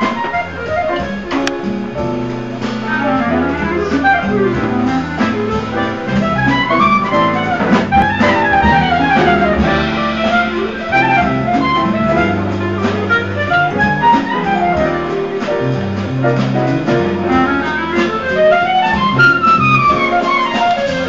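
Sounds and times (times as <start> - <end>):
jazz rhythm section low notes: 0.0 - 21.0
reed instrument jazz solo: 0.0 - 21.0.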